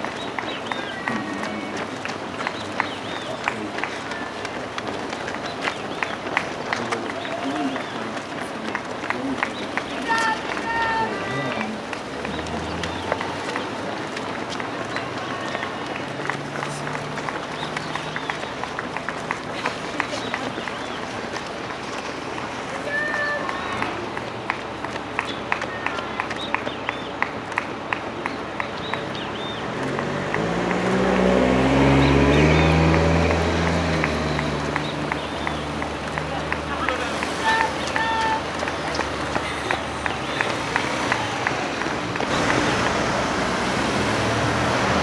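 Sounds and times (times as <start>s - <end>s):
people's voices: 0.0s - 45.0s
running footsteps on asphalt: 0.0s - 45.0s.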